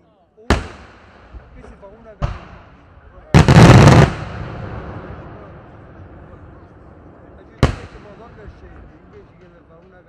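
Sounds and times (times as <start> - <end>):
firework bang: 3.4 - 6.3.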